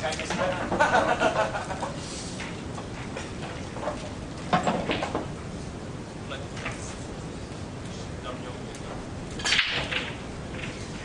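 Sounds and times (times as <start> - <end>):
pool balls clattering: 0.0 - 5.4, 9.3 - 11.0
pool balls colliding crack: 4.5 - 5.3, 9.4 - 10.8.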